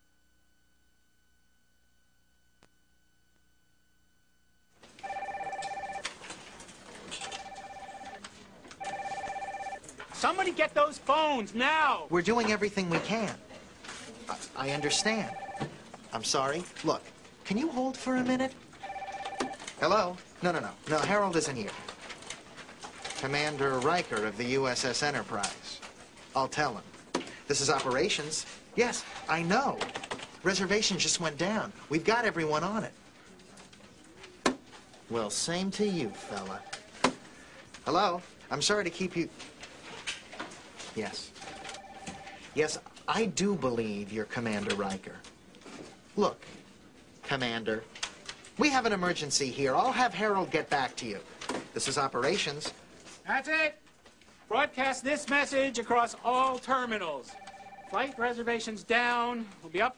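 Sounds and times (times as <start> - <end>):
office telephones ringing: 4.8 - 10.8, 14.6 - 16.3, 18.7 - 25.4, 27.6 - 31.1, 35.6 - 37.6, 41.3 - 42.8, 49.7 - 52.6, 56.6 - 59.2.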